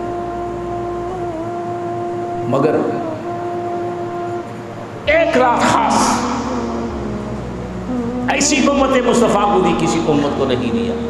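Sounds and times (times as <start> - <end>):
humming drone with overtones: 0.0 - 11.0.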